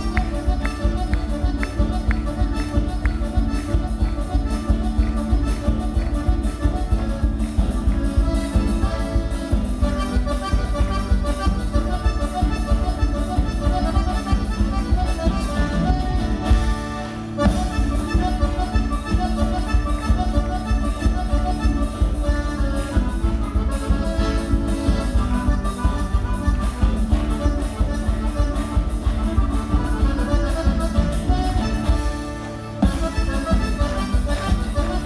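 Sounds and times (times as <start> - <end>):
accordion-led folk music: 0.0 - 35.0.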